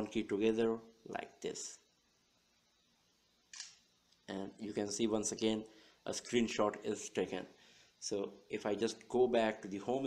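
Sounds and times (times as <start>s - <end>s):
phone camera shutter sound: 3.5s - 3.8s.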